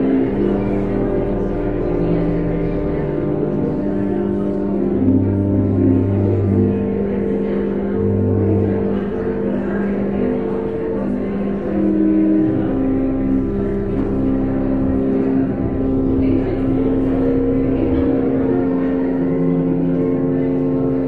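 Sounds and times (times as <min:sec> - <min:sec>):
church organ chords: 0:00.0 - 0:21.0.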